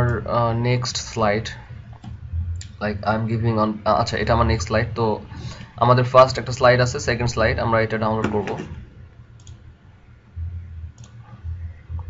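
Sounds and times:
low hum: 0:00.0 - 0:12.0
computer mouse clicks: 0:09.4 - 0:09.6, 0:10.9 - 0:11.4.

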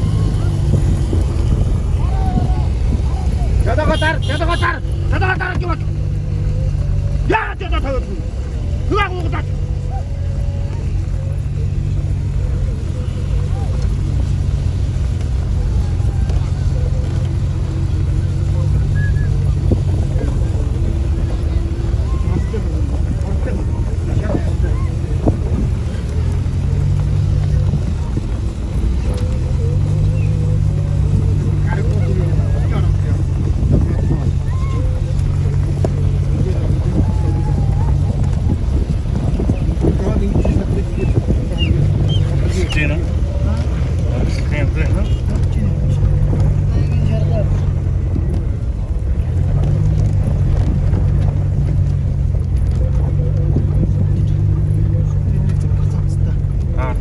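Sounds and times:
vehicle engine running: 0:00.0 - 0:57.0
voices calling out: 0:00.0 - 0:57.0.

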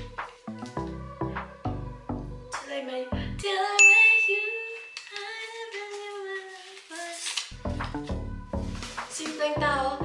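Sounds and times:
bright ding sound effect: 0:03.8 - 0:05.1.

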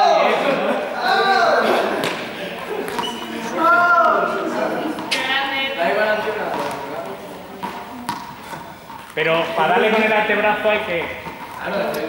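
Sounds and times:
indistinct voices in echoing hall: 0:00.0 - 0:12.0.

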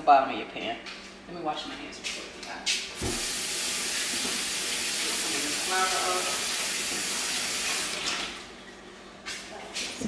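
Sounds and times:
tap water running: 0:03.0 - 0:08.7.

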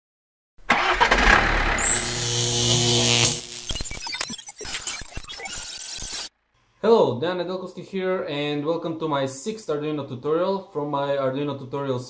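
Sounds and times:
thin high whine: 0:01.8 - 0:04.2.

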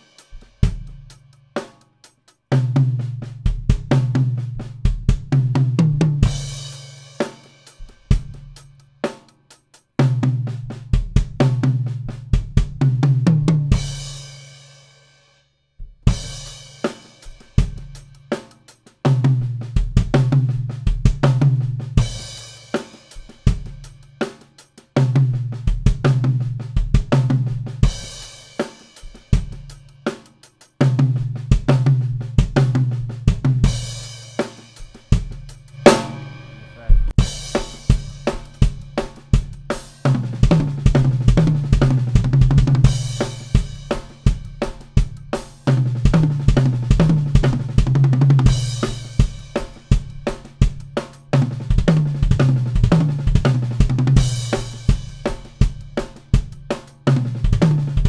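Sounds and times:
acoustic drum kit groove: 0:00.0 - 0:14.7, 0:15.8 - 0:58.0.

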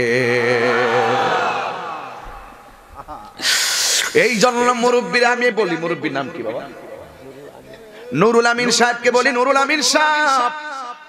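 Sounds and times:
faint hiss: 0:02.9 - 0:04.4
man chanting over loudspeaker: 0:04.1 - 0:11.0.

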